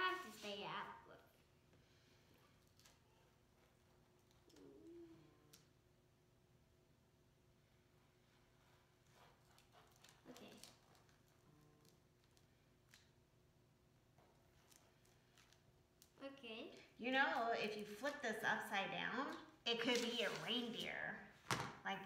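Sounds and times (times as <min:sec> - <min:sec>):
faint steady hum: 0:00.0 - 0:22.0
paper being handled: 0:19.3 - 0:21.0.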